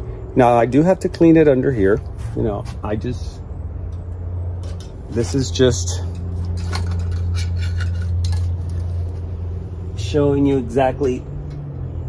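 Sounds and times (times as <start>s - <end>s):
steady low hum: 0.0s - 12.0s
light clinks and rustling: 3.9s - 9.3s.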